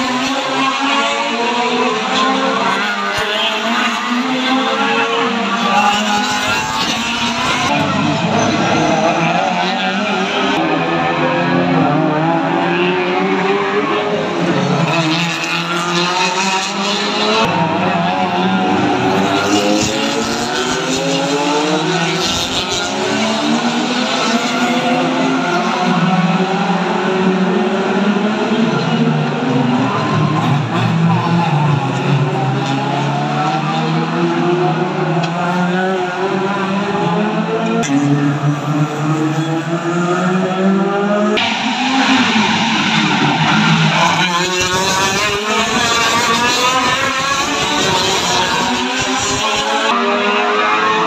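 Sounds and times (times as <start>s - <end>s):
race car engines revving: 0.0s - 51.0s.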